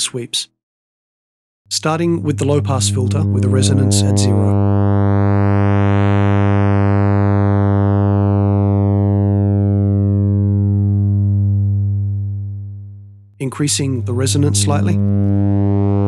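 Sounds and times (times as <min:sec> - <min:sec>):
filtered sawtooth synth buzz: 0:01.7 - 0:16.0.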